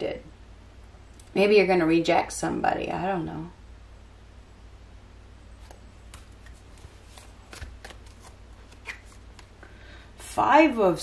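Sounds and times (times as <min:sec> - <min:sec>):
card snapping from deck: 0:05.6 - 0:09.5
cards being shuffled: 0:05.6 - 0:09.6.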